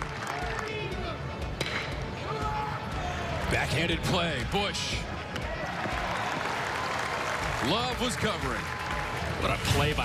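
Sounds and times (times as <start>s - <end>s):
ballpark crowd noise: 0.0s - 10.0s.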